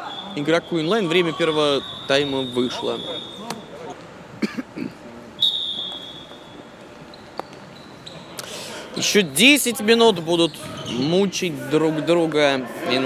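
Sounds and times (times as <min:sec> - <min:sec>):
high whistle: 0:00.0 - 0:03.8, 0:05.4 - 0:06.7
players' voices echoing: 0:00.0 - 0:05.4, 0:08.2 - 0:13.0.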